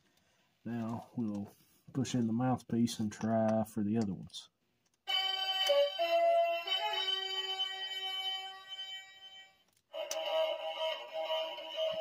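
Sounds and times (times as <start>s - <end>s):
toy electronic flute notes: 5.1s - 8.7s, 10.0s - 12.0s.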